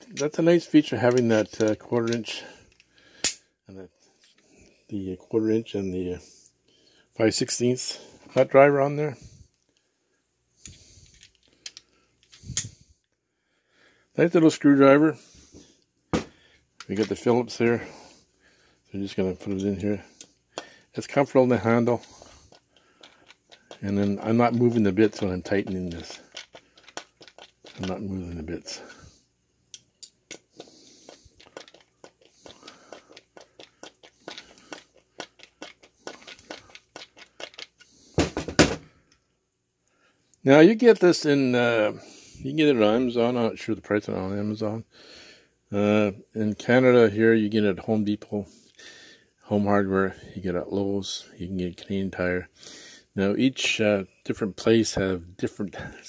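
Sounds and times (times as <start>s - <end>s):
screwdriver bits clicking: 22.5s - 28.0s.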